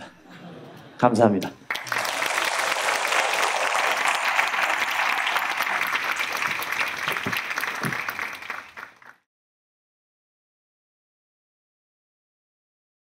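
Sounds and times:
audience applauding: 0:01.6 - 0:09.2.

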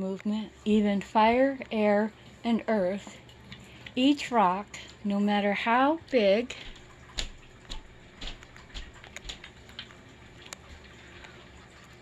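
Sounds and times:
light irregular clicks and ticks: 0:06.5 - 0:11.4.

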